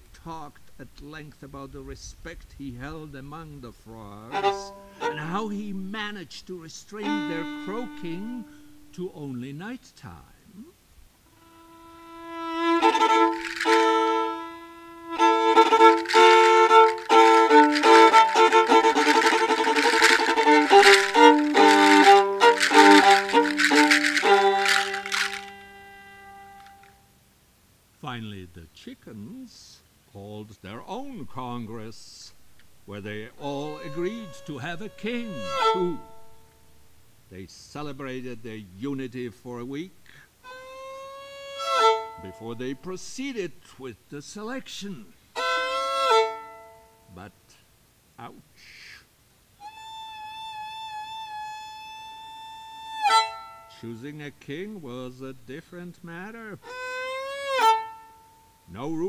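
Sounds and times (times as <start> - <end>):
solo fiddle playing: 1.9 - 9.4, 11.3 - 27.1, 32.9 - 36.8, 40.4 - 43.5, 44.4 - 47.3, 49.6 - 59.0
violin holding high note: 4.2 - 6.1, 6.8 - 9.0, 11.3 - 27.1, 33.2 - 36.6, 40.4 - 42.9, 45.4 - 47.0, 49.6 - 54.2, 56.5 - 58.8.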